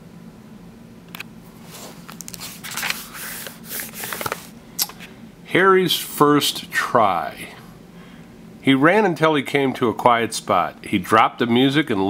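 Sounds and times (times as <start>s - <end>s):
faint steady hum: 0.0s - 12.0s
paper page rustling and turning: 1.6s - 4.6s.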